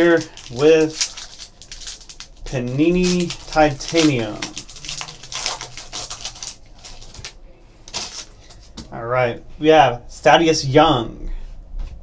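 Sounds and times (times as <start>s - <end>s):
wrapper crinkling and tearing: 0.0s - 8.7s.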